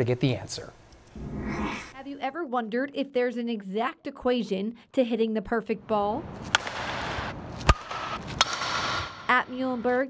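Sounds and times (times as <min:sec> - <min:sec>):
bat striking a ball: 0:06.4 - 0:09.3.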